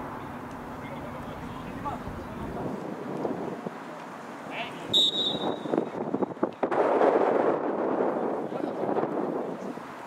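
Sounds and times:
referee's whistle blast: 4.9 - 5.8.

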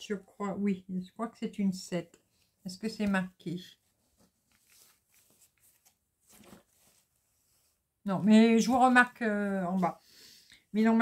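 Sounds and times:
faint rustles of material: 2.0 - 10.8.

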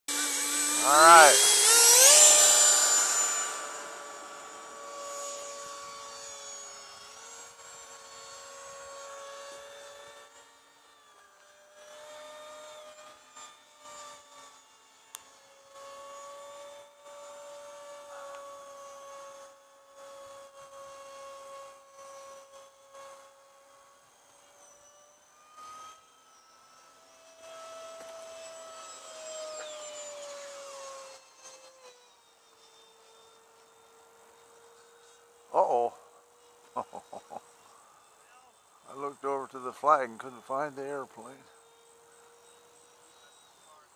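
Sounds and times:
model jet ducted fan whining: 0.1 - 43.9.

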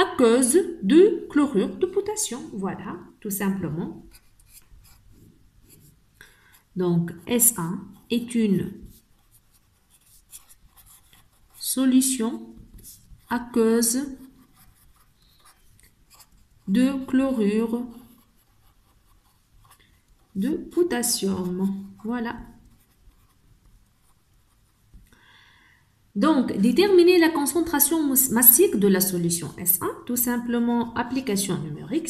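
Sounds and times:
marker writing on paper: 4.0 - 6.0, 7.1 - 11.8, 12.5 - 25.0.

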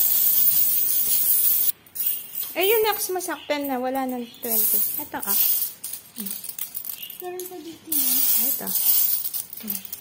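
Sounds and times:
coins shuffling by hand: 0.0 - 3.0, 4.0 - 10.0.

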